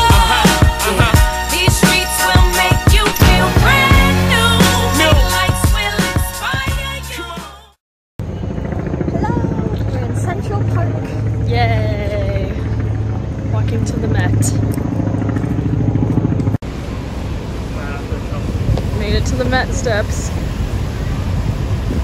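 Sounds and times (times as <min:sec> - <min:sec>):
people talking: 0:00.0 - 0:01.2, 0:09.0 - 0:12.8, 0:13.5 - 0:14.6, 0:17.7 - 0:20.4
low rumble of city noise: 0:08.2 - 0:22.0.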